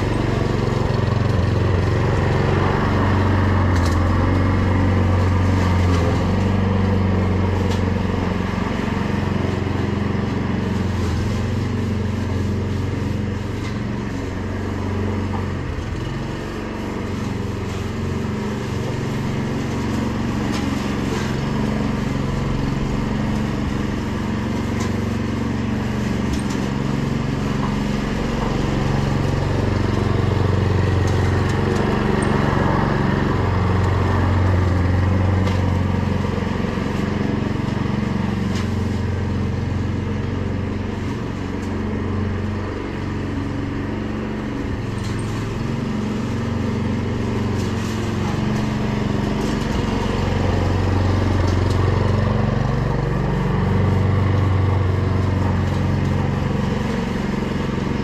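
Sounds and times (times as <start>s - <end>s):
lawn mower engine cutting grass: 0.0s - 58.0s.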